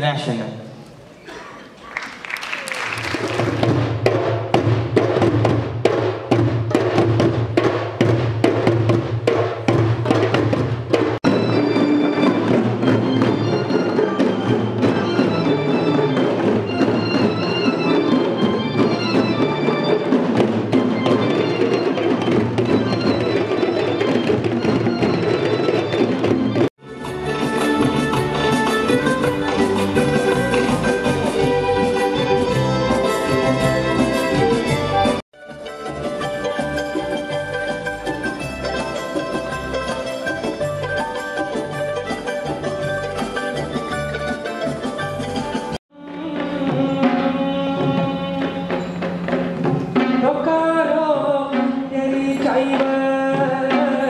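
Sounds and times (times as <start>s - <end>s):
music: 3.0s - 54.0s
fast dense drumming: 3.2s - 25.3s
pitched melody notes: 11.2s - 50.2s.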